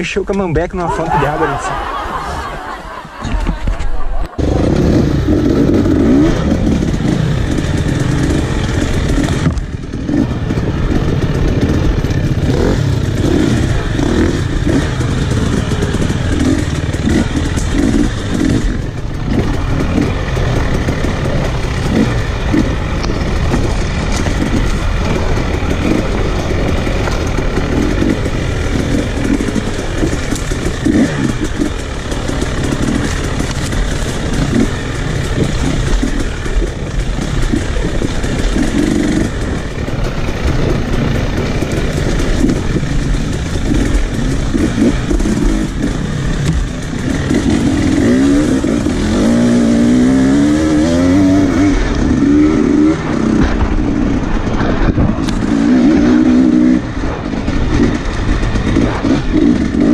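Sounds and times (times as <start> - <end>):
dirt bike engine revving: 0.9 - 59.9.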